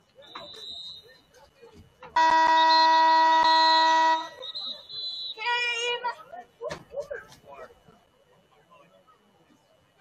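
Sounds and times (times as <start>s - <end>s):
stadium game horn blast: 2.2s - 4.4s.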